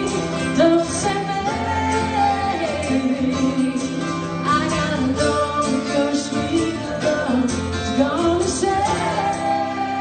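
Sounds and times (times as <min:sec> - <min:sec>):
acoustic band playing country-rock: 0:00.0 - 0:10.0.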